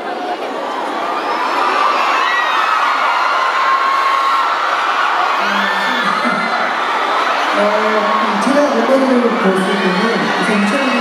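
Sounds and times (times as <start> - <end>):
crowd screaming and cheering: 0.0 - 11.0.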